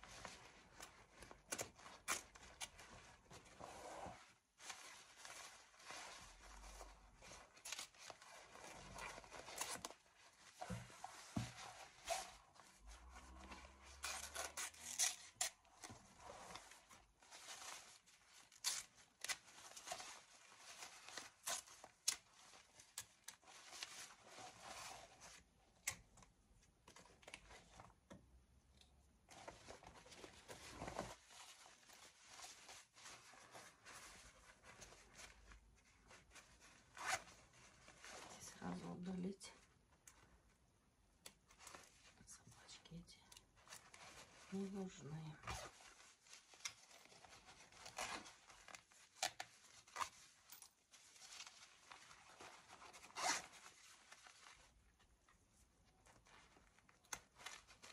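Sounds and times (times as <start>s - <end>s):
fabric rustling and crinkling: 0.0s - 28.2s, 29.0s - 57.9s.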